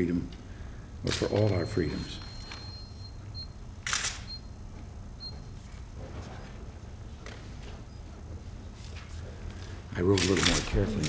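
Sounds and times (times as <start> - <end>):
camera shutter clicks: 3.8 - 4.3, 10.2 - 10.7.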